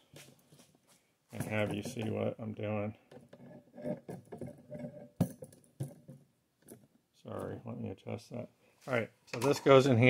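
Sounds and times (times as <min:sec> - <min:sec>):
hard parts clattering: 0:01.4 - 0:02.3.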